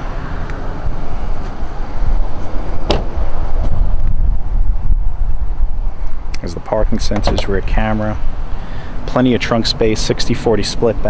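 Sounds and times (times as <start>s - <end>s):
wind buffeting microphone: 0.5s - 8.8s.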